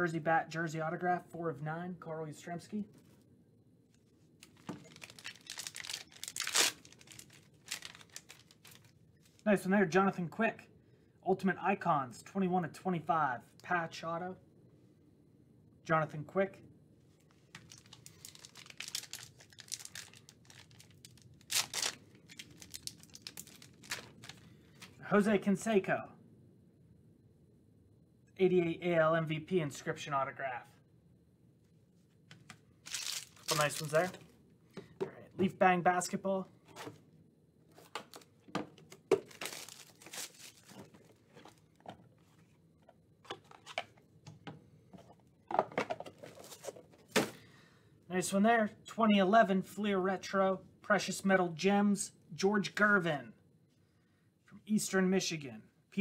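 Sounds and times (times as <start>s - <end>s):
packaging rustling and knocking: 4.4s - 8.9s, 37.8s - 42.3s
foil wrapper crinkling: 4.4s - 9.4s, 17.3s - 25.0s, 32.8s - 34.2s, 39.2s - 41.7s.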